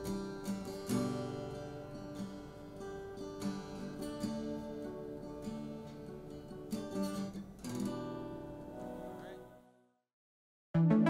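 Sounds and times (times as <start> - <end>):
acoustic guitar chords strummed: 0.0 - 9.7.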